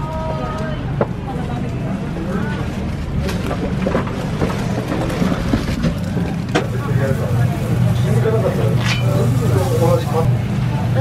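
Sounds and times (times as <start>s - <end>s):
chatter of many voices: 0.0s - 11.0s.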